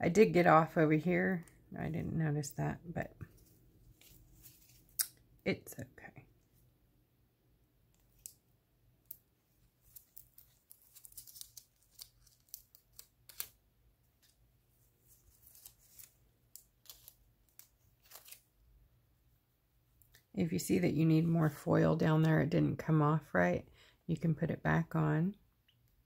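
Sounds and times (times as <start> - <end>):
foil crackling as peeled off: 9.8 - 13.6, 15.1 - 18.5.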